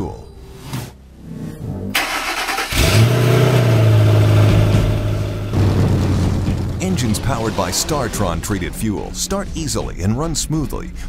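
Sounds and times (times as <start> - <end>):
car engine starting: 1.9 - 10.0
whoosh: 4.6 - 9.4.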